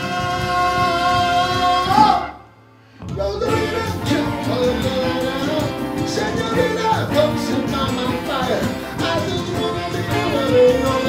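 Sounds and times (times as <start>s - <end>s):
man singing: 0.0s - 2.4s, 3.1s - 11.0s
rock band music: 0.0s - 2.5s, 3.1s - 11.0s
keyboard: 0.0s - 11.0s
saxophone: 3.5s - 11.0s.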